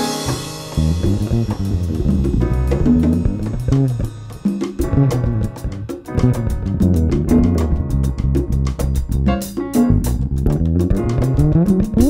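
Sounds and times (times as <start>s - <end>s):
drum kit cymbals: 0.0s - 10.4s
upright bass line: 0.0s - 12.0s.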